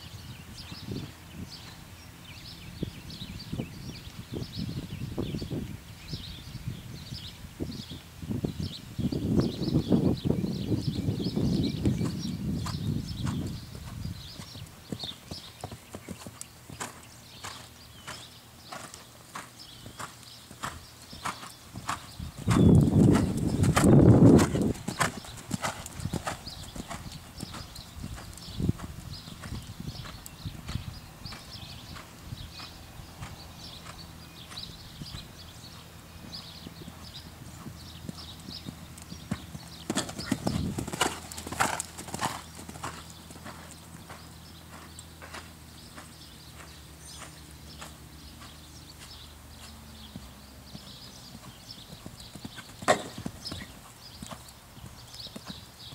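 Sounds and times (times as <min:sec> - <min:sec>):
horse hooves cantering on sand: 0:11.5 - 0:55.9.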